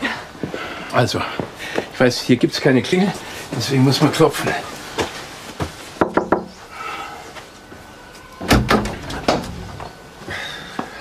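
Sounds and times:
knocking on a door: 0:06.0 - 0:06.5.

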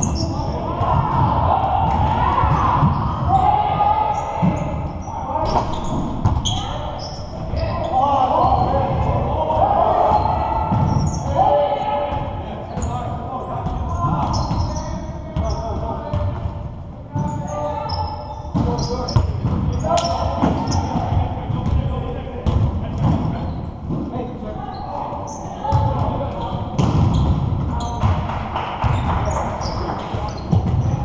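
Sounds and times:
players calling out: 0:00.0 - 0:16.4
basketballs bouncing on hardwood floor: 0:18.5 - 0:21.9, 0:25.7 - 0:31.0.

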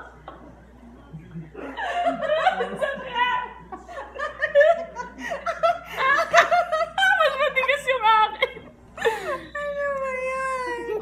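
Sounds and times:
women laughing hard: 0:01.6 - 0:09.8.

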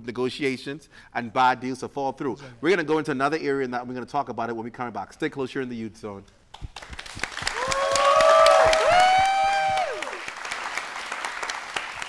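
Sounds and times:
audience applauding: 0:06.6 - 0:12.0
crowd whooping: 0:07.5 - 0:10.4.

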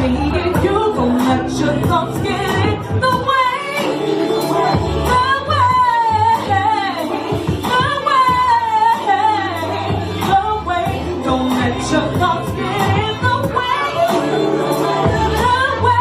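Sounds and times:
rnb backing track with beat: 0:00.0 - 0:16.0
woman singing into a microphone: 0:00.0 - 0:16.0.

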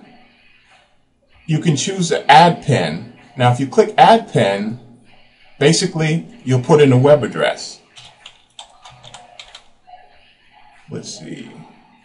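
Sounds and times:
computer keyboard clicking: 0:08.0 - 0:09.7.

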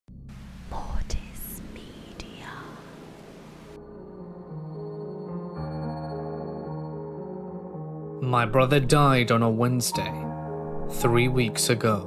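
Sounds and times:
glitchy static hiss: 0:00.3 - 0:03.8
distorted whispering voice: 0:00.7 - 0:03.0.

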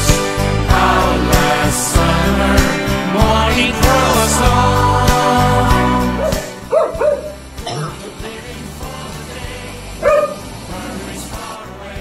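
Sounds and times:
song on soundtrack: 0:00.0 - 0:12.0
dog barking: 0:06.2 - 0:07.4, 0:10.0 - 0:10.4.

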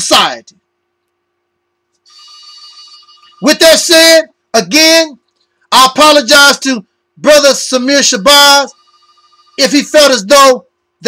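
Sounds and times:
high-pitched chord tone: 0:02.1 - 0:03.9, 0:08.6 - 0:09.8.

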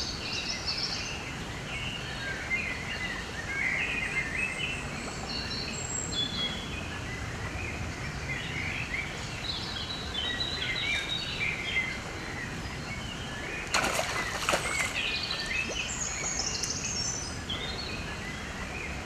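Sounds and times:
outdoor background noise: 0:00.0 - 0:19.0
songbirds singing and chirping: 0:00.0 - 0:19.0.

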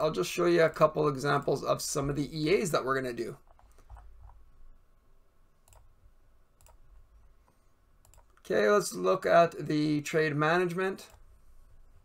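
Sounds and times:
quiet room hum: 0:00.0 - 0:12.0
computer mouse clicks: 0:05.6 - 0:05.9, 0:06.6 - 0:06.8, 0:07.4 - 0:08.4, 0:11.0 - 0:11.3.

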